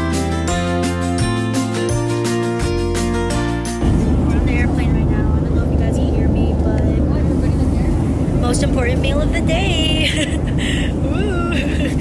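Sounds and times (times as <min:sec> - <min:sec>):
background music: 0:00.0 - 0:06.3
airliner cabin rumble: 0:03.7 - 0:12.0.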